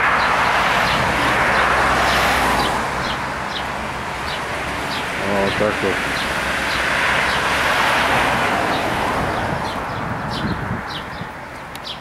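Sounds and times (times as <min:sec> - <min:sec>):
car driving past: 0:00.0 - 0:10.0
small birds chirping: 0:02.6 - 0:07.6, 0:08.7 - 0:12.0.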